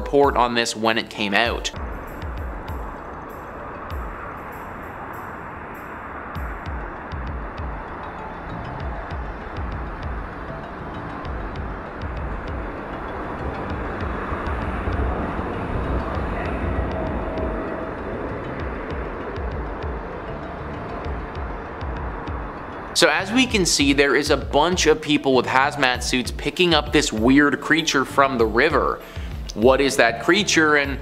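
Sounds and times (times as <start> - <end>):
rumbling hiss: 0.0 - 31.0
uneven low rumbling: 1.4 - 31.0.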